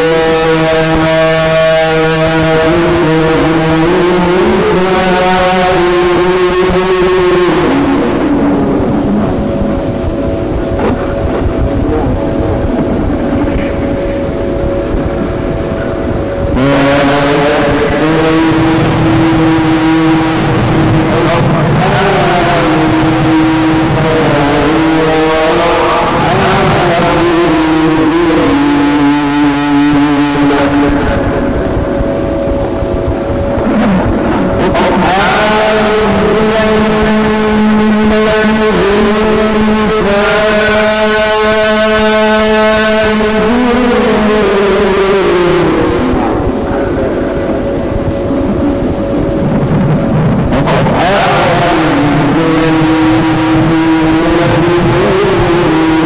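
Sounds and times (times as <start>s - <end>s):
man reciting in long held notes: 0.0s - 56.0s.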